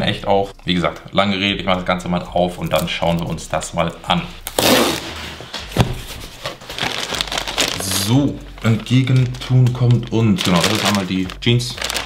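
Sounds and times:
cardboard rustling and scraping: 4.6s - 12.0s.

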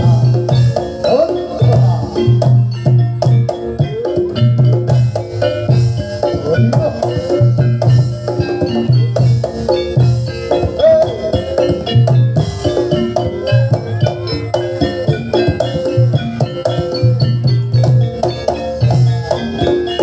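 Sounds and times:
drums driving beat: 0.0s - 20.0s
ringing bronze metallophones: 0.0s - 20.0s.

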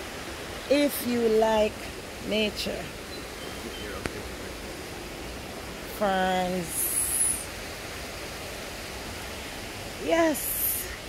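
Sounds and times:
rushing river water: 0.0s - 11.0s.

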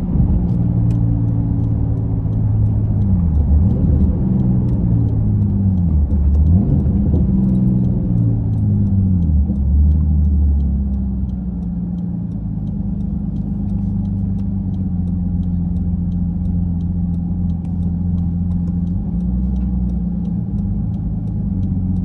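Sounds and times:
car engine revving and idling: 0.0s - 22.0s.

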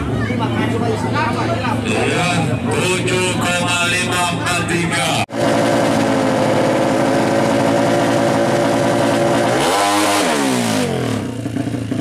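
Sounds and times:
voices talking loudly: 0.0s - 5.3s
crowd babble: 0.0s - 7.6s.

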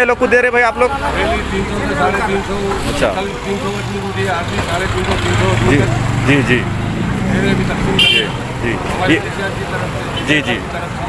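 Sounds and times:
vehicle engine idling: 0.0s - 10.4s
indistinct voices: 0.0s - 11.0s.

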